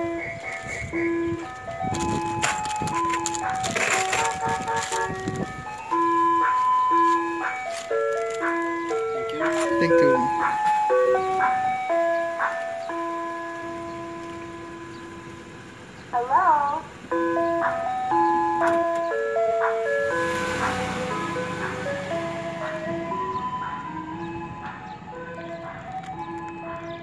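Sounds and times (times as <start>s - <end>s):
ice cream truck chime: 0.0s - 27.0s
low engine and road rumble: 0.0s - 27.0s.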